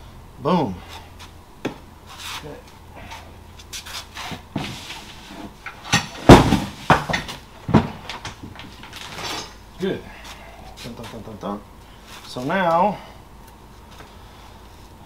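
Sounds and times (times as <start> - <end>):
metal parts clattering on workbench: 5.6 - 9.6.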